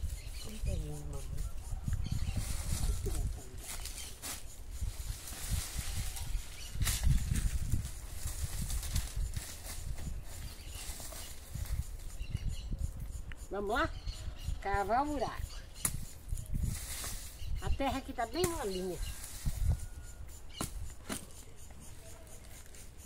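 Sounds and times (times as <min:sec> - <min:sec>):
hoe chopping into soil: 0:20.6 - 0:21.4.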